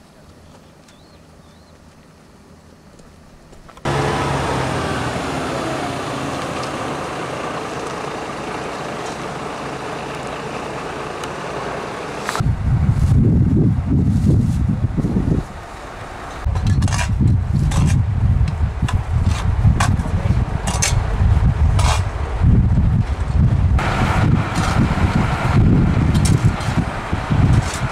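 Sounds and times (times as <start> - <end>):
truck diesel engine running: 3.8 - 13.8, 20.3 - 27.9
uneven low rumble: 12.3 - 27.9.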